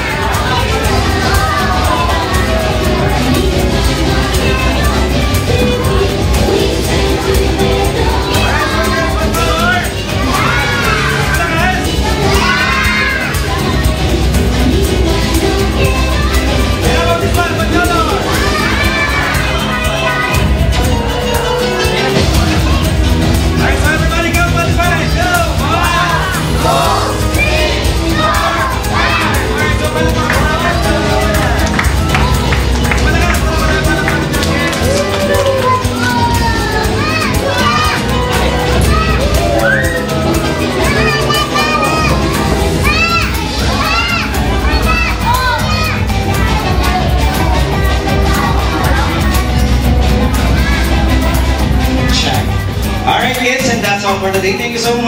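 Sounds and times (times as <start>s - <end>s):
background music: 0.0s - 55.0s
children shouting and cheering: 0.0s - 55.0s.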